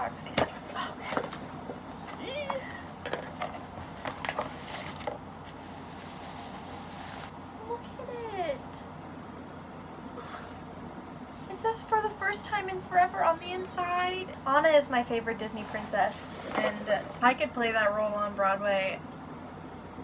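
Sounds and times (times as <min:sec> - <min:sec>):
bubble wrap crinkling: 0:04.2 - 0:07.3
person humming and sighing: 0:10.2 - 0:10.6.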